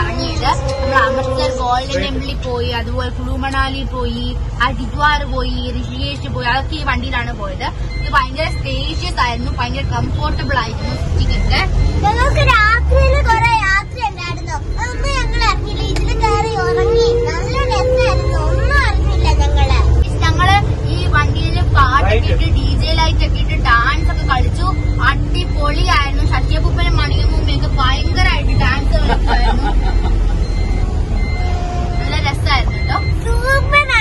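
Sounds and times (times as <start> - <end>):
passengers' voices: 0.0 - 4.3, 20.2 - 30.6
bus engine rumble: 0.0 - 34.0
road noise: 0.0 - 34.0.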